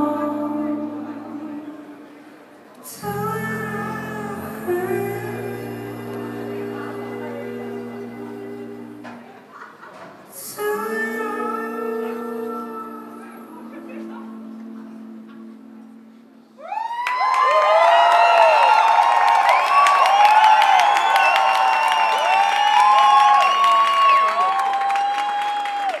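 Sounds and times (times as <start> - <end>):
held music chord: 3.0 - 9.2, 10.7 - 16.6
audience cheering and applauding: 16.6 - 26.0.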